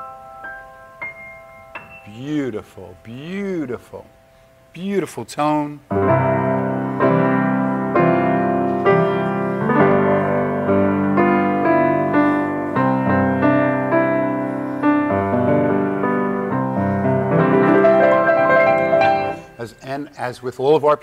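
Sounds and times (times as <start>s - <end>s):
slow grand piano chords: 0.0s - 4.8s, 5.8s - 20.2s.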